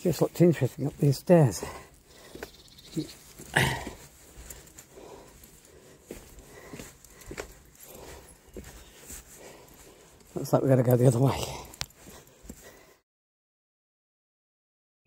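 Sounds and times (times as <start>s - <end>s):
footsteps on concrete steps: 0.0s - 13.0s.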